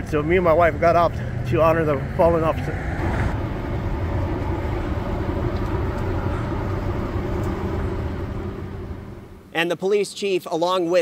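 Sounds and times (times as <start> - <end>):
road vehicles passing: 0.0 - 9.5.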